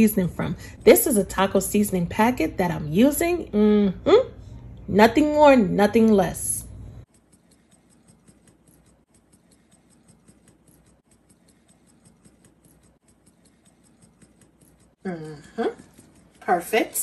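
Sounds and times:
fast even ticking: 7.0s - 17.0s.

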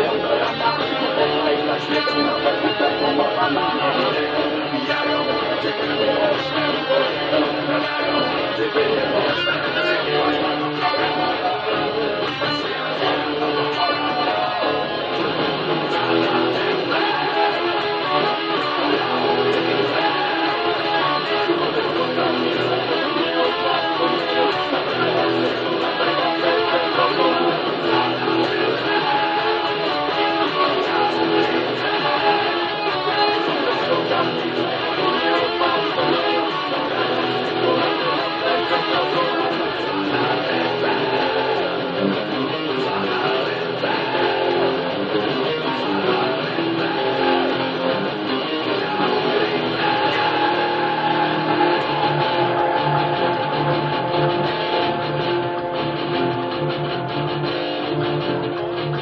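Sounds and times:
electric guitar rock riff: 0.0s - 59.0s.

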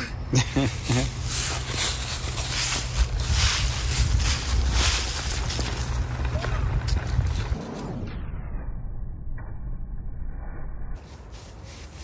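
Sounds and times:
low rumble: 0.1s - 11.0s
dry leaves rustling and crunching: 0.6s - 7.6s, 11.0s - 12.0s.

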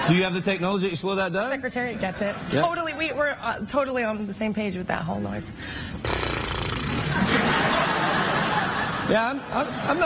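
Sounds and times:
studio audience laughing: 6.9s - 10.0s.

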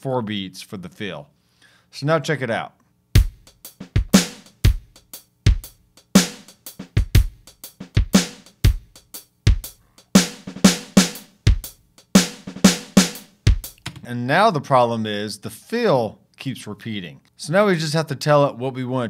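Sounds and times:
synth drum kit shuffle groove: 3.2s - 14.1s.

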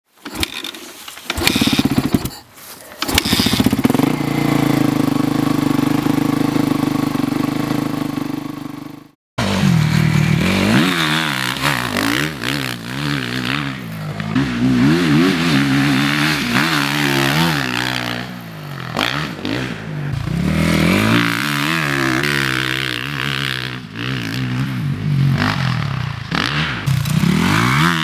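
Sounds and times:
motorcycle engine starting and idling: 0.2s - 28.0s
motorcycle engine revving: 1.3s - 2.4s, 3.0s - 28.0s.

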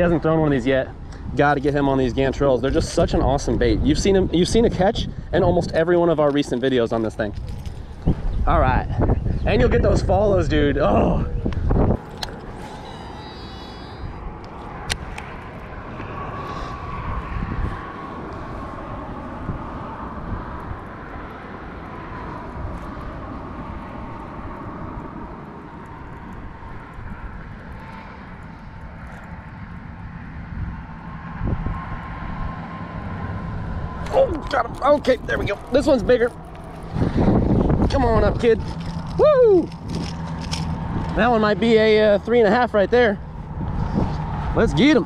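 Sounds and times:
distant engine drone: 0.0s - 45.0s.

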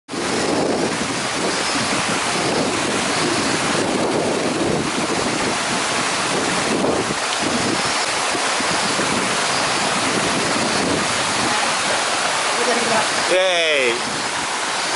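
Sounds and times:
stream water flowing over rocks: 0.1s - 14.9s.

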